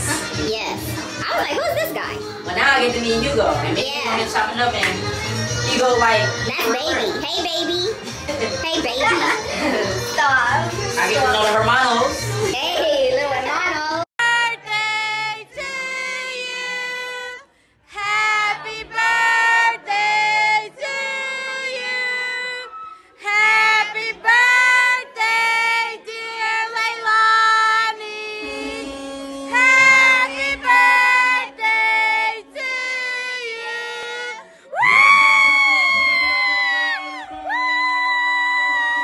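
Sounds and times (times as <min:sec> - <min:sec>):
high voice singing: 0:28.3 - 0:35.1
lower held note: 0:28.4 - 0:30.6.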